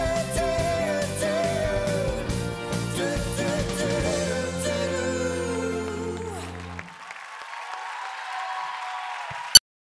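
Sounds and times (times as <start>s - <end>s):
pop band held chord: 0.0s - 6.9s
audience applause: 5.6s - 9.6s.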